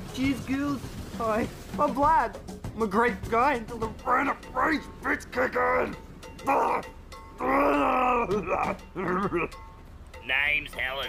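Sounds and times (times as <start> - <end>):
background music: 0.0 - 11.0
person crying out angrily: 5.2 - 9.5
wavering grunts: 5.2 - 9.6.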